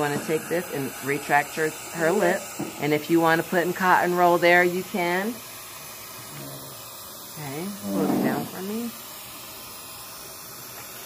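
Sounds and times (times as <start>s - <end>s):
dental suction hissing: 0.0s - 11.0s.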